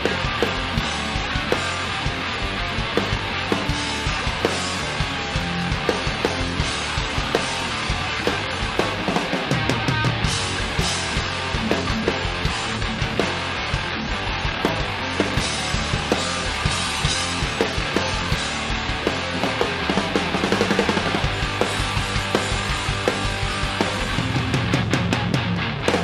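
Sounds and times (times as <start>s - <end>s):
heavy rock band playing live: 0.0s - 26.0s.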